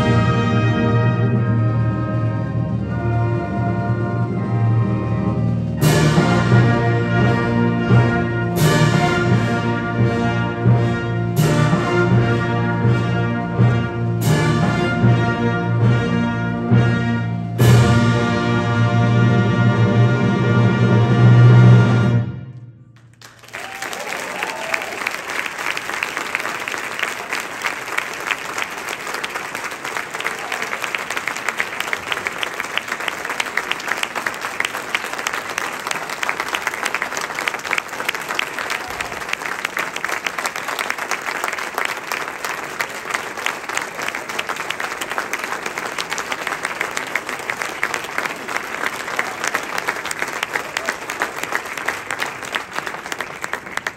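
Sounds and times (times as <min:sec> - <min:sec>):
audience applauding: 0:23.0 - 0:53.9
voices among clapping: 0:23.0 - 0:53.9.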